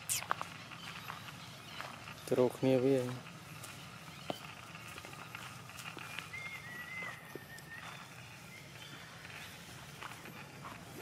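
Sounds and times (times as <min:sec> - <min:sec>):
faint rustles and clicks: 0:00.0 - 0:11.0
thin wavering whistle-like call: 0:06.3 - 0:09.2.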